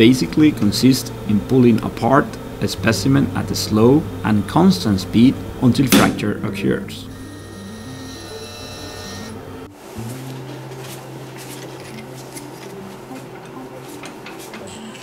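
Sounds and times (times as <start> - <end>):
testing machine high whine: 0.0 - 9.8
soft background music: 0.0 - 15.0
steady hum: 0.0 - 15.0.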